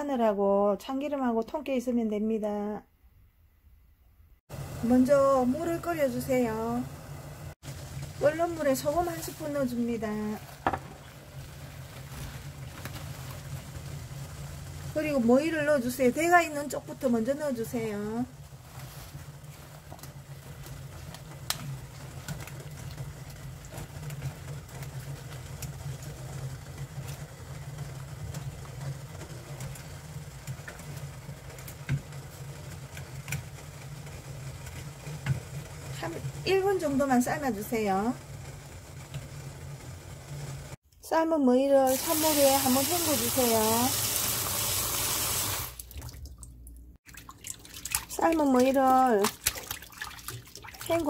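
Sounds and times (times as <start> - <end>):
pot of water boiling: 4.5 - 40.8, 41.7 - 46.4, 47.0 - 51.0
tap water rushing into strainer: 10.4 - 14.9, 41.9 - 46.3
water drips and splashes: 18.6 - 26.2, 41.9 - 51.0.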